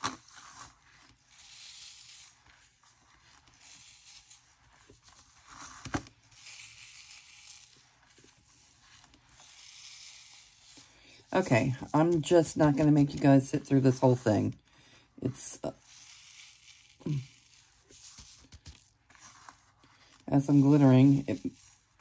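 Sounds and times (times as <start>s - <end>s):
glitter swept across metal tray: 15.3s - 22.0s.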